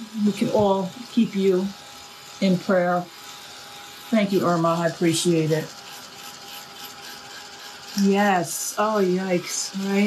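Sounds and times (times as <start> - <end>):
handheld electric dryer whirring: 0.0 - 10.0.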